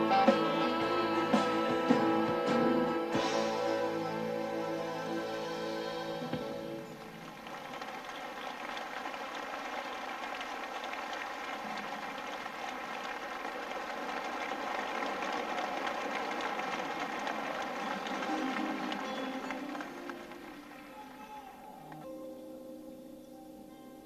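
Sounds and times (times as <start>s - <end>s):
audience applauding: 0.0s - 22.1s.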